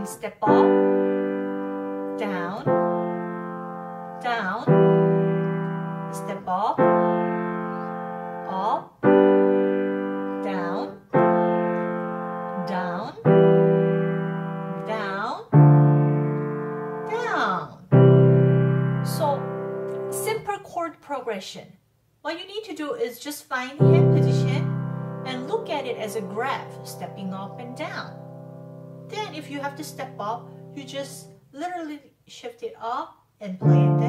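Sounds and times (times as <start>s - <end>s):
piano chords: 0.0s - 20.5s, 23.8s - 31.4s, 33.6s - 34.0s.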